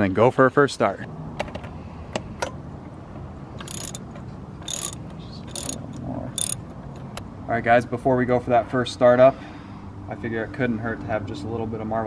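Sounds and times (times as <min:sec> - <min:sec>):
ratchet wrench clicking: 0:03.6 - 0:06.6.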